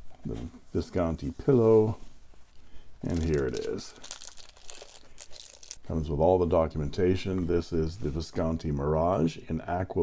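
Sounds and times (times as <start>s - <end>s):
plastic sleeve crinkling: 1.8s - 5.9s.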